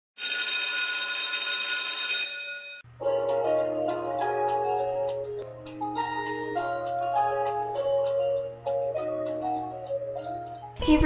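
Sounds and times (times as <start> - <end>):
bell ringing: 0.2 - 3.7
xylophone-like mallet music: 3.0 - 10.8.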